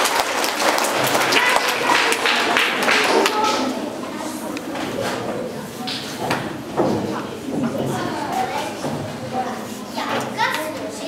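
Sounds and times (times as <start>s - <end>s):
children chattering in a hall: 0.0s - 11.0s
high child's voice: 1.3s - 2.2s, 7.8s - 11.0s.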